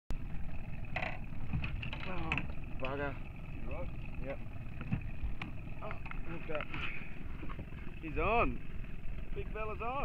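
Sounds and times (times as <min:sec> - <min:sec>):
outboard motor running: 0:00.1 - 0:10.0.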